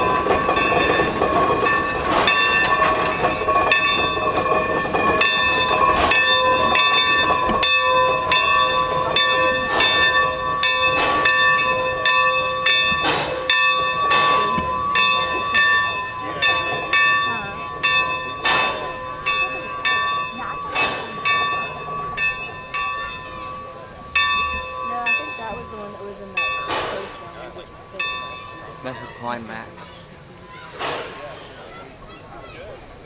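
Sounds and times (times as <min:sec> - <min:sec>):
locomotive moving along track: 0:00.0 - 0:33.0.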